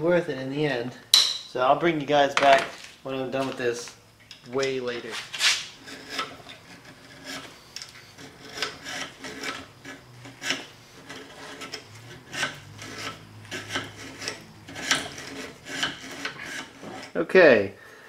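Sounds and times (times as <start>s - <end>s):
hand file rasping on steel: 5.1s - 17.2s.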